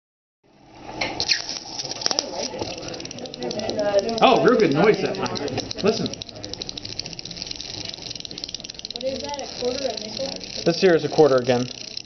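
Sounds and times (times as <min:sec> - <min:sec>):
coin buzzing rattle on dry ice: 0:01.2 - 0:12.0.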